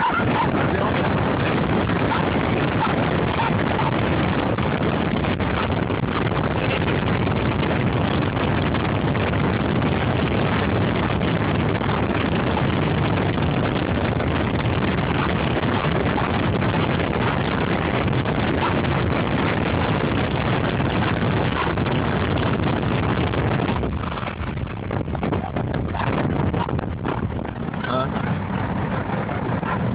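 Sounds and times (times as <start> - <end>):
road noise inside car: 0.0 - 29.9
wind rushing through car window: 0.0 - 29.9.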